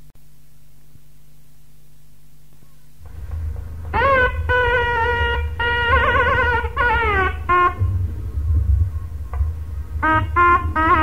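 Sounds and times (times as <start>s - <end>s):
low rumble: 3.0s - 11.0s
nadaswaram playing: 3.0s - 11.0s.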